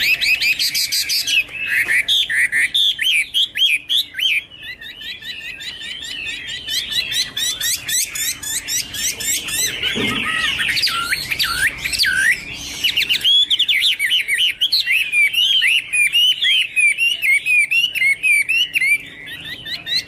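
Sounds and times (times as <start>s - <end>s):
bird singing swooping whistles: 0.0s - 20.0s.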